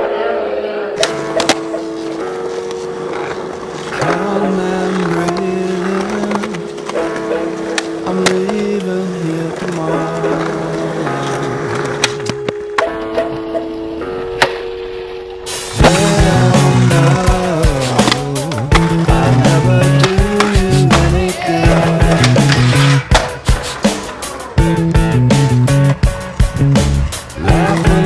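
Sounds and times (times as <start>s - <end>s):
guitar song: 0.0s - 28.0s
skateboard wheels rolling on concrete: 0.0s - 28.0s
skateboard deck clacks: 1.0s - 14.7s, 15.8s - 28.0s.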